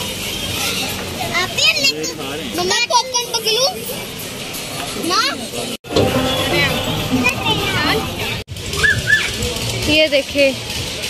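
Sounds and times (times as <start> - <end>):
children chattering: 0.0 - 10.6
music: 5.9 - 11.0.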